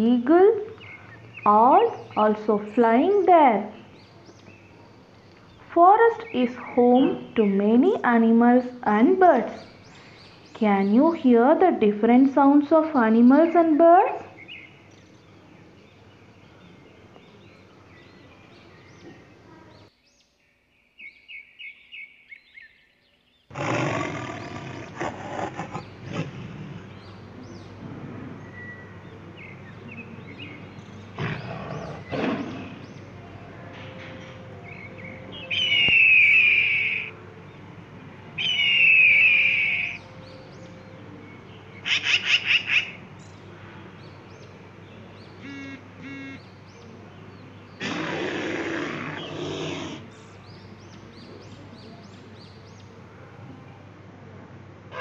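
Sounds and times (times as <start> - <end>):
animal roar: 23.5 - 26.9, 31.2 - 32.8, 47.8 - 50.1
bird chirps: 33.8 - 37.2, 38.4 - 43.4, 45.2 - 47.5
falling bird calls: 34.1 - 37.2, 45.2 - 52.8.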